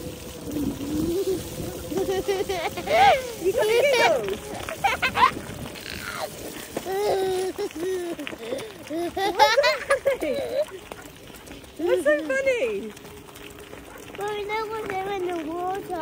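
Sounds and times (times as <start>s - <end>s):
toddler laughing and squealing: 0.6s - 10.9s.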